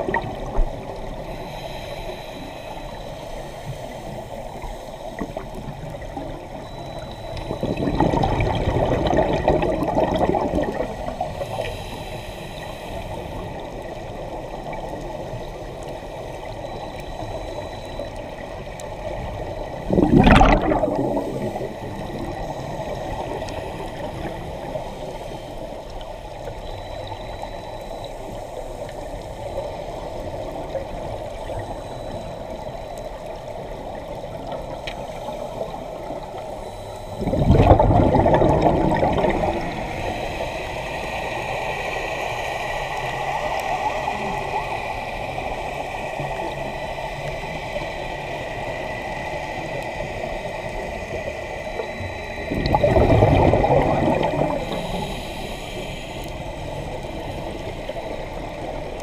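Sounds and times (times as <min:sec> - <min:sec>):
rush of exhaled bubbles: 0:00.0 - 0:01.1, 0:07.4 - 0:11.6, 0:19.8 - 0:24.7, 0:37.1 - 0:40.1, 0:52.4 - 0:55.1
muffled underwater noise: 0:00.0 - 0:59.0.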